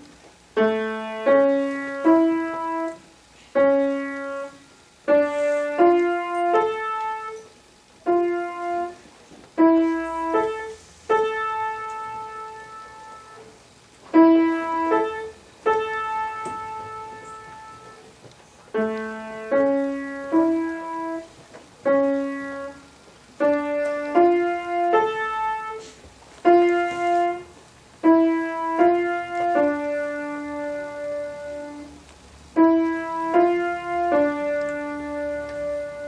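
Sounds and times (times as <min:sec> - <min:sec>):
slow grand piano melody: 0:00.0 - 0:36.0.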